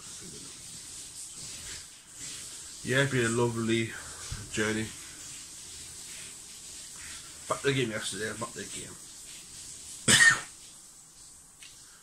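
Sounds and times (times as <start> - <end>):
man coughing: 10.1 - 10.5.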